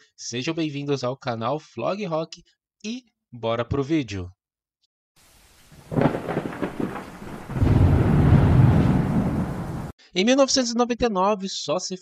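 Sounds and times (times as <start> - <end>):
rain hiss: 5.2 - 9.9
thunder rumbling: 5.6 - 9.9.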